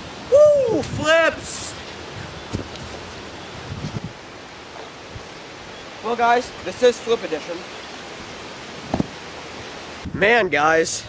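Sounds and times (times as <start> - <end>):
wind noise on microphone: 0.2 - 4.3, 9.9 - 11.0
thumps on trampoline mat: 8.9 - 9.2.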